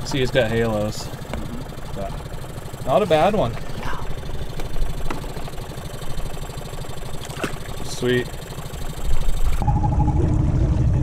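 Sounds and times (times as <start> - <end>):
outboard motor running: 0.0 - 11.0.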